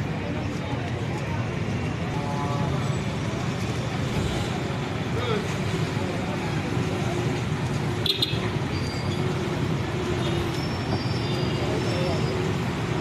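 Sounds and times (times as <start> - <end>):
road traffic rumble: 0.0 - 13.0
voices: 0.0 - 13.0.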